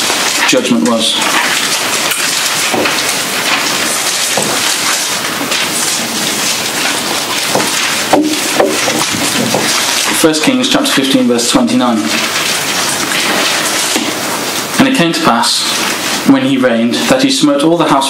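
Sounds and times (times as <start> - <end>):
loud steady hiss: 0.0 - 18.0
faint knocks and rustles: 1.2 - 10.2.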